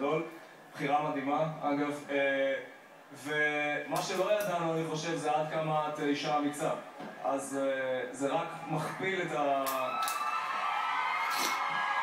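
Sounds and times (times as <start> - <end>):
audience cheering: 8.6 - 12.0
long high shouts: 9.6 - 12.0.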